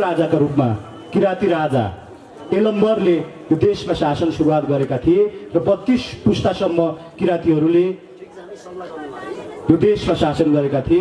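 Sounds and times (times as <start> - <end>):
man speaking: 0.0 - 9.0, 9.7 - 11.0
murmur of people talking: 0.0 - 11.0.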